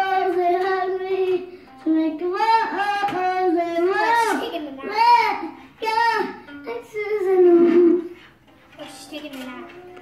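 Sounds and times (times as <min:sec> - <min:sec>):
girl singing held notes: 0:00.0 - 0:10.0.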